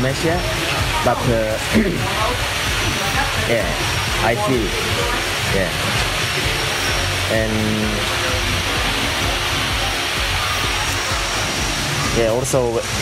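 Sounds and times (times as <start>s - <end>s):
low hum: 0.0s - 13.0s
rushing background noise: 0.0s - 13.0s.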